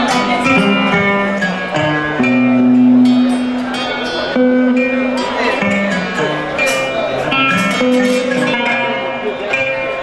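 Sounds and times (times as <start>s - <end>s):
band music over sound system: 0.0s - 10.0s
bass line: 0.0s - 10.0s
plucked guitar line: 0.0s - 10.0s.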